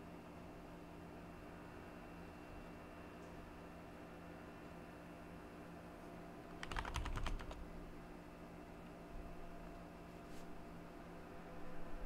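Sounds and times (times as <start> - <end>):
faint steady hum: 0.0 - 12.0
keyboard typing: 6.5 - 7.6.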